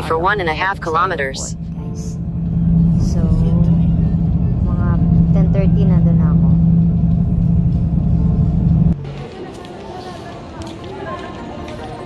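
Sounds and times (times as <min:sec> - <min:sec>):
car engine and road noise: 0:00.0 - 0:09.6.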